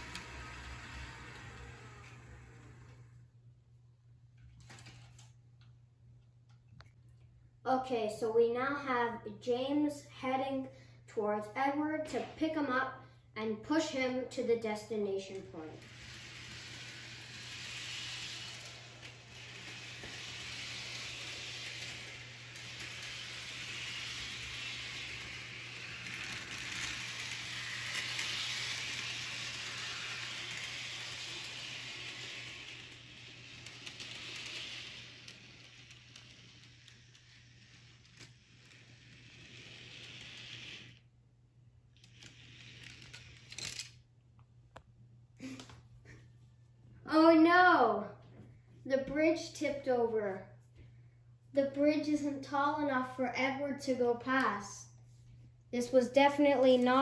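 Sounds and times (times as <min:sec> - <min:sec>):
model train motor whirring on rails: 0:00.0 - 0:03.2, 0:13.7 - 0:41.1, 0:41.9 - 0:44.0.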